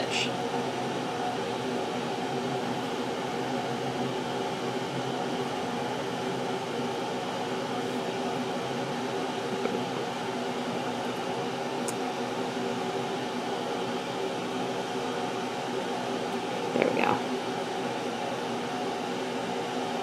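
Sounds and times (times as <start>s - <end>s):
air conditioner fan whirring: 0.0s - 20.0s.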